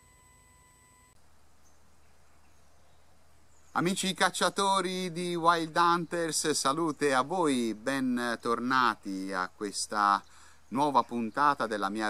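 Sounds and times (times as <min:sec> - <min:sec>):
low hum: 0:00.0 - 0:03.7
faint steady whine: 0:00.0 - 0:12.0.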